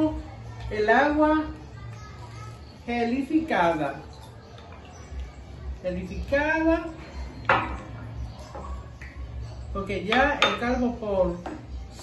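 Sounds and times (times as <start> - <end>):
kitchenware knocking on glass: 10.1 - 10.8.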